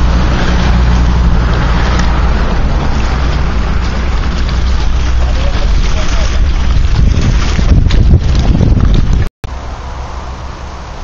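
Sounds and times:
wind buffeting microphone: 0.0s - 9.3s.

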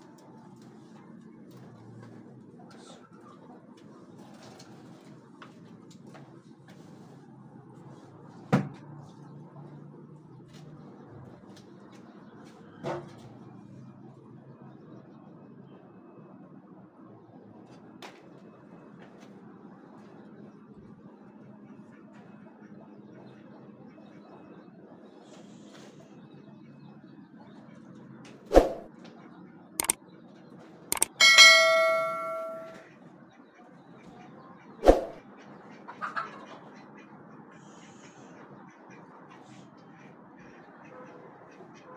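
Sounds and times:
mouse clicks: 30.9s - 31.2s
notification bell ding: 31.0s - 32.8s.

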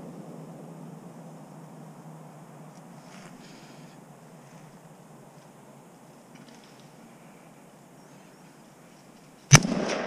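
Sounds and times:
rifle shot with rolling echo: 9.5s - 10.0s.

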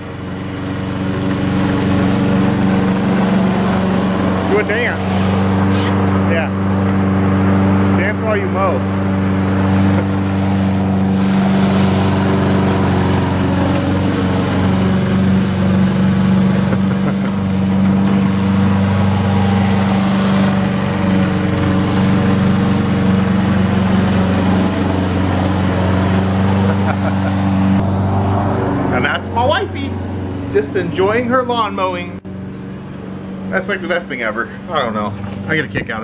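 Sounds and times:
lawn mower engine running: 0.0s - 36.0s.

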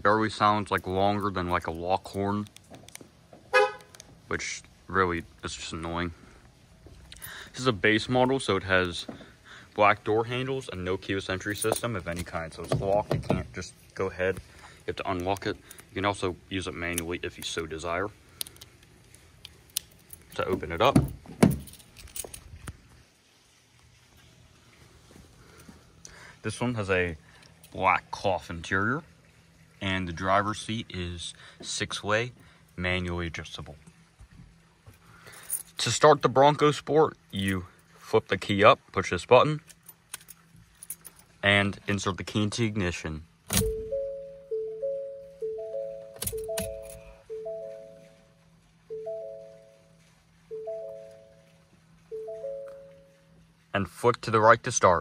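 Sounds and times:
car door opening clicks: 43.5s - 44.1s, 46.2s - 47.0s
two-note warning chime: 43.6s - 48.3s, 48.9s - 51.5s, 52.1s - 53.4s.

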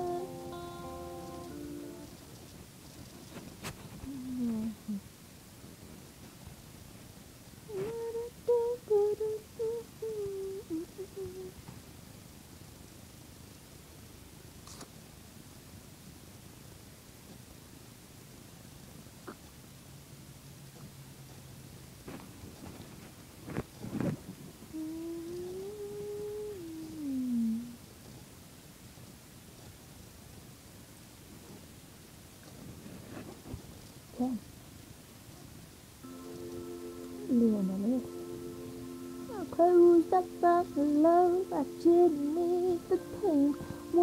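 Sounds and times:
woman humming: 0.0s - 2.1s, 4.0s - 5.0s, 7.7s - 11.6s, 24.7s - 27.8s, 34.2s - 34.5s, 37.2s - 38.2s, 39.3s - 44.0s.

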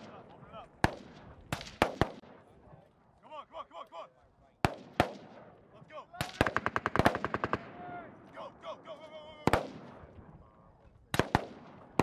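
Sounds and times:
man calling out: 7.8s - 9.6s.

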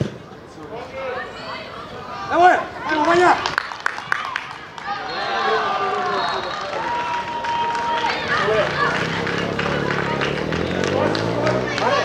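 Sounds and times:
people shouting from sideline: 4.8s - 9.5s.

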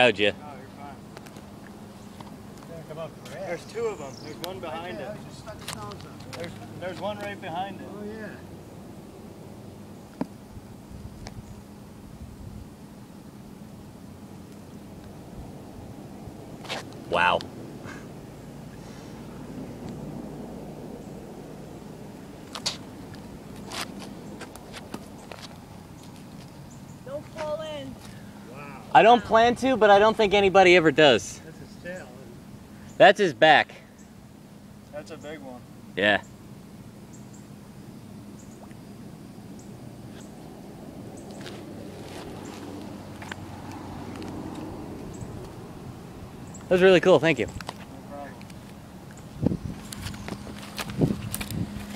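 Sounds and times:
low outdoor rumble: 0.0s - 33.0s, 33.6s - 51.9s.

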